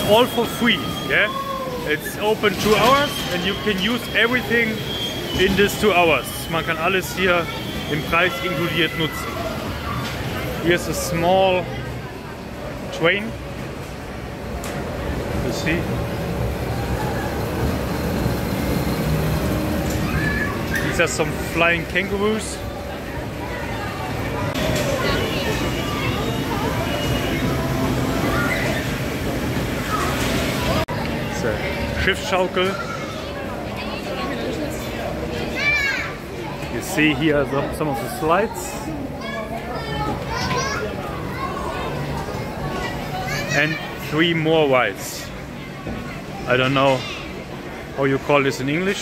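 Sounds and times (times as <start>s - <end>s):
people talking: 0.0s - 13.4s, 20.1s - 29.0s
children playing: 0.0s - 49.0s
high child's voice: 23.5s - 29.0s, 35.3s - 36.6s, 39.1s - 44.0s.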